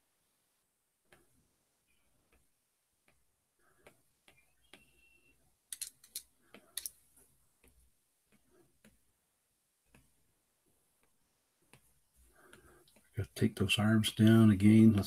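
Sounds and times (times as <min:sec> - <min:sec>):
stylus tapping on tablet screen: 0:02.2 - 0:09.2, 0:09.8 - 0:13.1.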